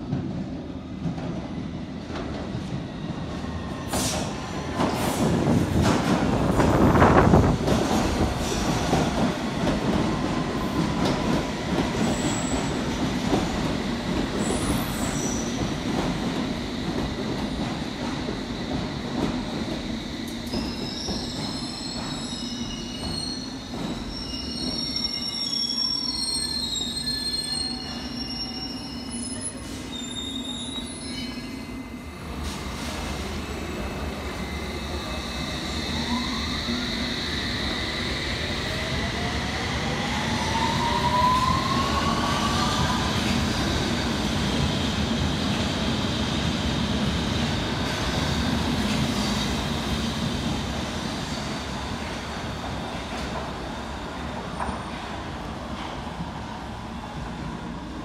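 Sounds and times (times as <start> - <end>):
subway train rumble: 0.0 - 58.0.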